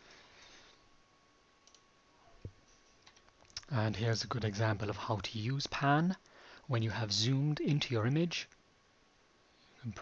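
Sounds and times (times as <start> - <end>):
computer mouse click: 1.6 - 1.8.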